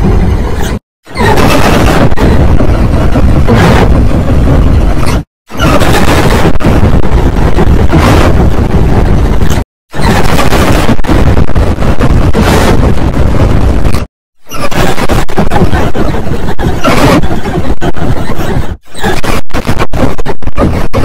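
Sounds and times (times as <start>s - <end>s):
harsh distorted noisy roar: 0.0s - 17.3s.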